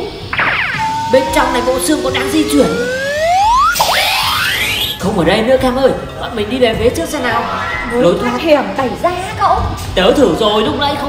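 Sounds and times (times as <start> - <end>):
rising whistle-like tones: 0.3 - 5.3.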